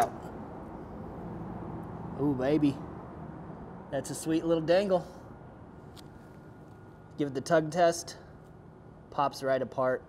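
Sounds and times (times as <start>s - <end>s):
low background hiss and hum: 0.0s - 10.0s.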